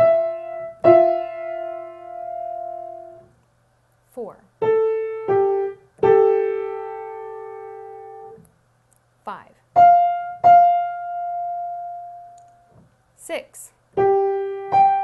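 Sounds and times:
piano playing intervals: 0:00.0 - 0:03.4, 0:04.6 - 0:08.5, 0:09.8 - 0:12.9, 0:14.0 - 0:15.0.

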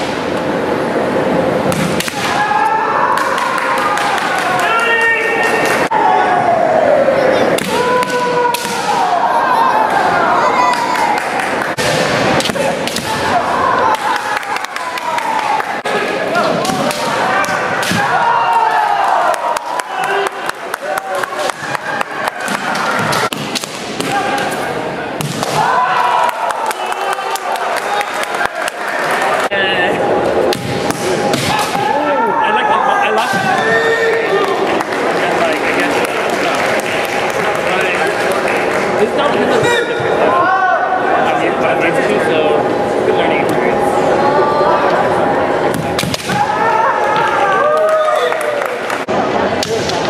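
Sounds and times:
fencers shouting in echoing hall: 0:02.0 - 0:29.4, 0:30.0 - 0:34.6, 0:39.4 - 0:41.9, 0:43.7 - 0:48.6.

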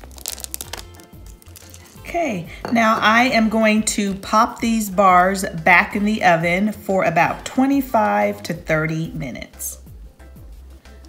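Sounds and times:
chips scattered into pan: 0:00.0 - 0:02.0
faint background music: 0:00.0 - 0:11.0.

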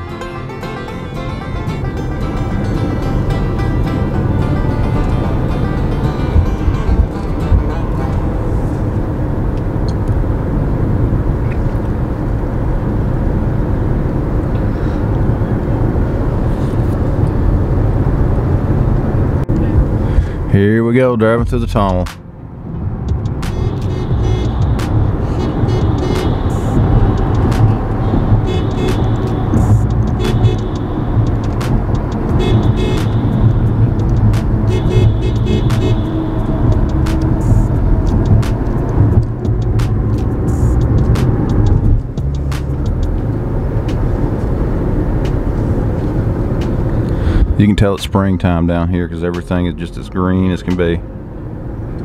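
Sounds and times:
car road and engine rumble: 0:00.0 - 0:52.0.

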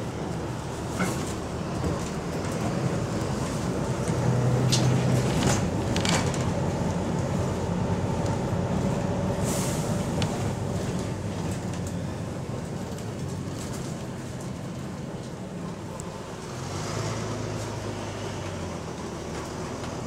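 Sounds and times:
knocks and rattles of bus body: 0:00.0 - 0:16.4, 0:17.6 - 0:20.0
bus diesel engine hum: 0:00.0 - 0:20.0.

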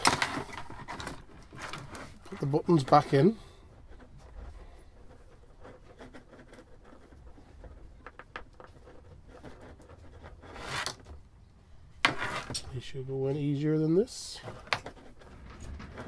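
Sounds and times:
plastic casing scrape: 0:00.0 - 0:11.2, 0:12.0 - 0:12.7.

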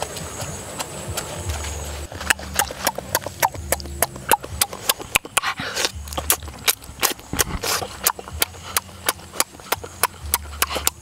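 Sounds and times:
wet clicking of eating: 0:02.2 - 0:11.0.

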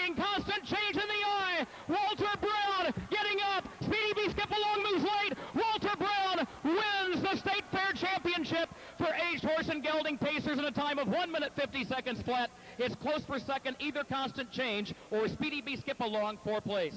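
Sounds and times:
man announcing a race: 0:00.0 - 0:16.9.

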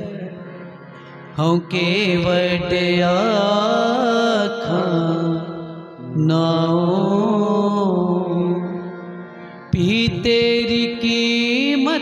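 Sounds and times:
harmonium accompaniment: 0:00.0 - 0:12.0
man singing long wavering note: 0:01.4 - 0:12.0.

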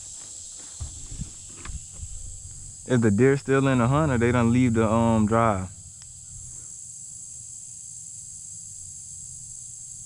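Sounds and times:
insects droning: 0:00.0 - 0:10.0
truck engine rumble: 0:00.8 - 0:06.6.

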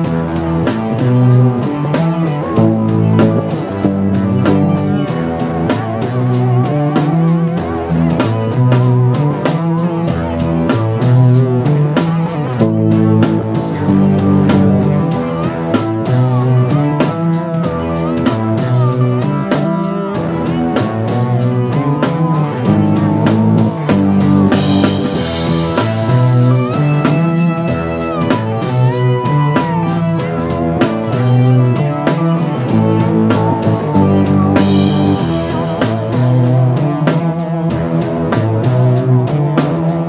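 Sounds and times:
drum kit steady beat: 0:00.0 - 0:40.0
electric guitar: 0:00.0 - 0:40.0
keyboard: 0:00.0 - 0:40.0.

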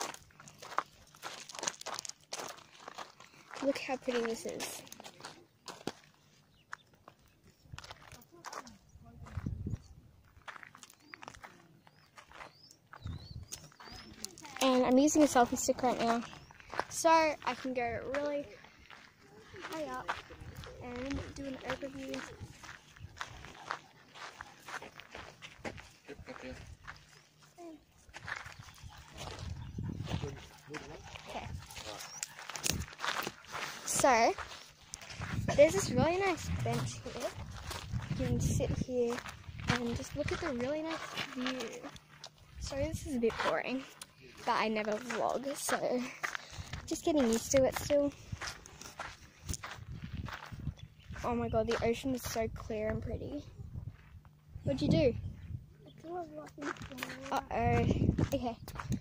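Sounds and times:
footsteps on gravel: 0:00.0 - 0:55.1, 0:55.9 - 0:59.0.

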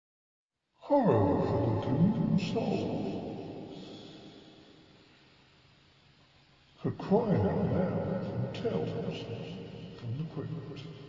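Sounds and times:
echoing processed voice: 0:00.8 - 0:04.5, 0:06.8 - 0:11.0.

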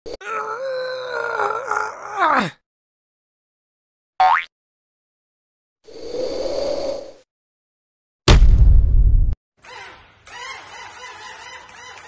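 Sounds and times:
wavering vocal wail: 0:00.1 - 0:02.6.

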